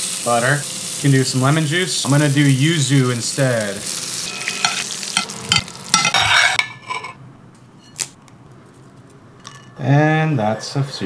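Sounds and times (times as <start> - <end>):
butter sizzling in a pan: 0.0 - 7.0.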